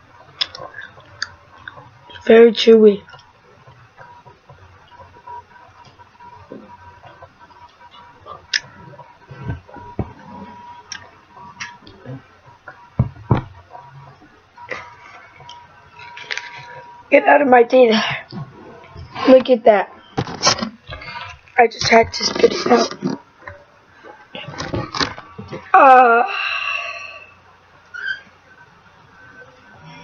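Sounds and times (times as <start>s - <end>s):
faint high whine: 0.0s - 30.0s
chewing and mouth clicks: 0.4s - 2.3s
low thumps: 3.6s - 16.0s.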